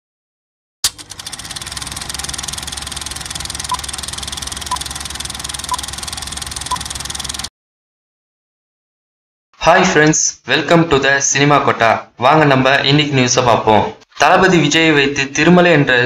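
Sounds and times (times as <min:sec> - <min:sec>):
film projector clattering: 0:00.8 - 0:07.5.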